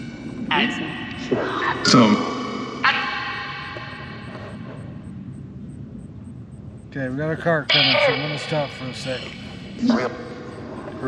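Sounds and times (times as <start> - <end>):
echoing ringing tones from speaker: 0.0 - 11.0.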